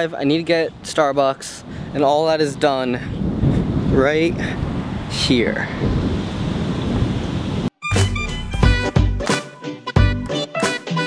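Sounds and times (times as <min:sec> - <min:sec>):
wind rumbling on microphone: 0:00.4 - 0:07.7
music: 0:07.8 - 0:11.0.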